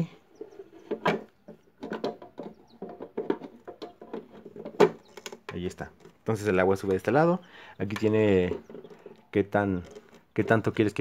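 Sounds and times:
plastic parts clicking and knocking: 0.7 - 7.0, 7.9 - 11.0.

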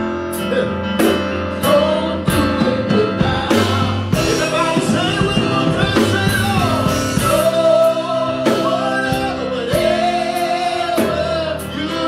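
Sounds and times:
keyboard: 0.0 - 12.0
group of singers: 0.3 - 12.0
steady beat: 1.1 - 10.2.

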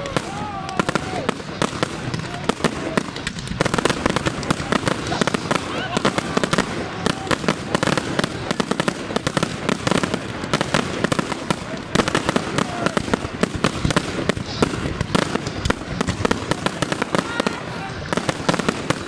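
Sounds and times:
fireworks bangs and crackling: 0.0 - 19.0.

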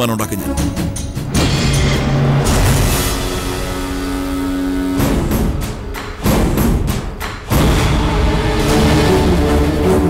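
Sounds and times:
dramatic theme music: 0.0 - 10.0
heavy percussion hits: 0.4 - 9.8.

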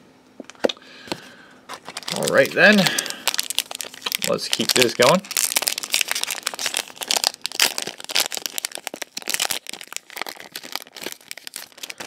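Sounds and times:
foil wrapper crinkling: 1.2 - 12.0.

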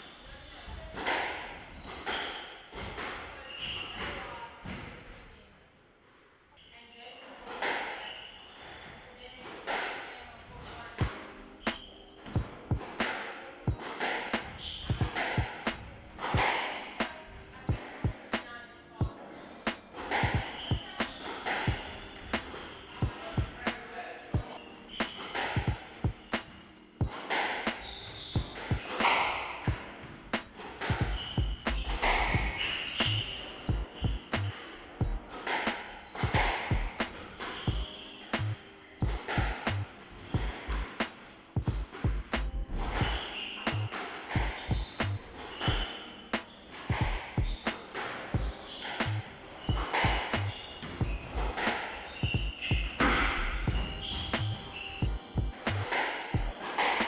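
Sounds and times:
shoes squeaking on wooden floor: 0.1 - 5.0, 10.6 - 57.0
squash ball cracks: 12.8 - 17.3.

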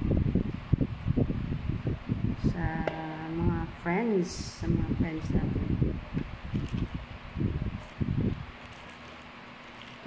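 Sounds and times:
wind buffeting microphone: 0.0 - 8.9.

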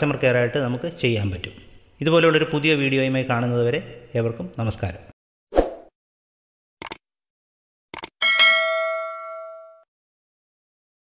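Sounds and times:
quick double click: 7.9 - 8.2
notification bell ding: 8.2 - 9.9.

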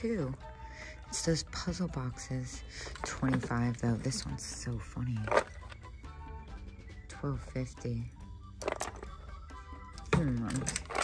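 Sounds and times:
quiet background music: 0.0 - 11.0
cardboard canisters clattering: 5.2 - 5.8, 8.6 - 9.1, 10.1 - 11.0.

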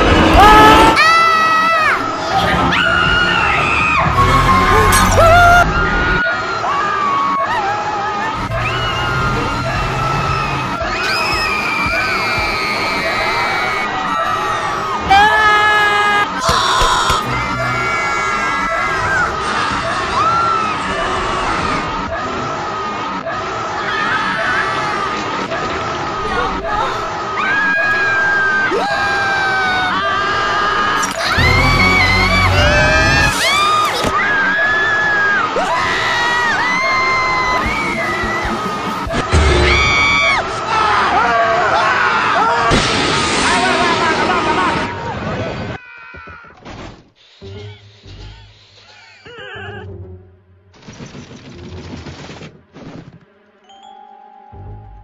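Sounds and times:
high-pitched screams: 0.2 - 22.5, 26.3 - 42.8
music: 1.8 - 6.2, 16.9 - 19.6, 29.7 - 40.2, 47.4 - 48.7, 49.3 - 50.8, 53.6 - 55.0.

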